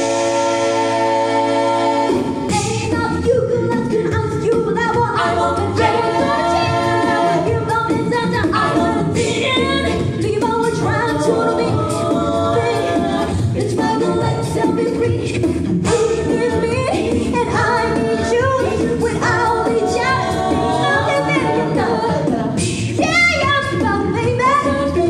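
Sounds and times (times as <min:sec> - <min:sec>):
a cappella group singing: 0:00.0 - 0:25.0.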